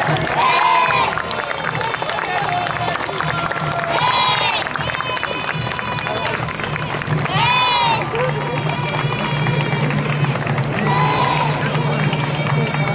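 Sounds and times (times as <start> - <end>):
crowd noise: 0.0 - 12.9
parade music: 0.0 - 12.9.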